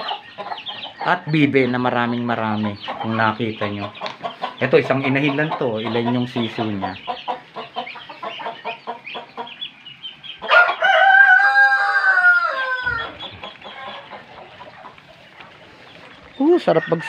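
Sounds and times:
poultry peeping and clucking: 0.0s - 17.0s
rooster crowing: 10.4s - 13.2s, 16.6s - 17.0s.

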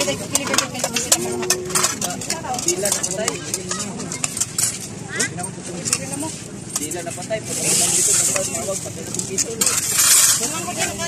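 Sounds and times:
spoons clinking on pot and plates: 0.0s - 4.9s
background chatter: 0.0s - 11.0s.

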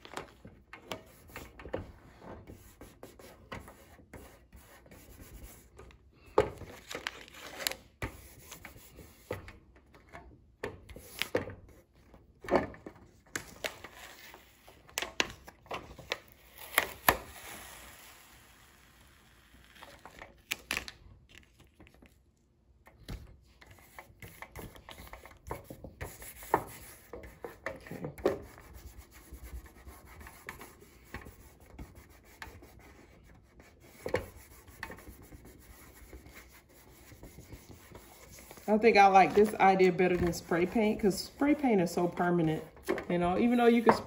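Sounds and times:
paper crinkling and clicking: 6.6s - 7.9s
hands rubbing contact paper: 28.4s - 44.0s.

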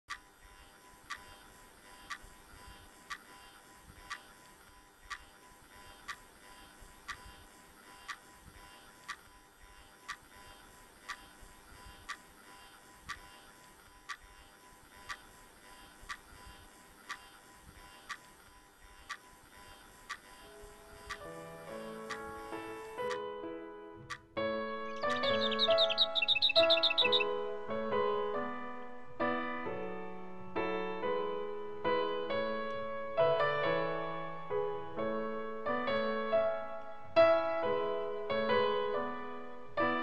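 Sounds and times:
faint steady hum: 0.1s - 40.0s
clock ticking: 1.0s - 14.3s, 14.9s - 23.2s, 24.9s - 27.3s.

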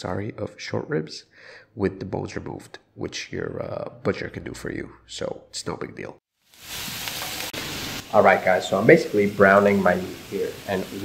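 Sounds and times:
meat sizzling in hot oil: 6.4s - 11.0s.

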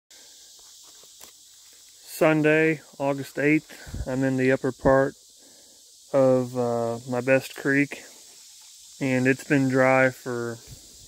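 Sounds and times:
steady high hiss: 0.1s - 11.0s.

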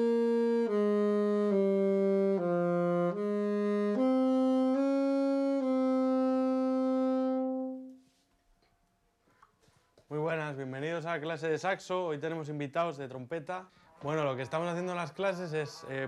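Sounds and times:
alto saxophone melody: 0.0s - 8.1s.

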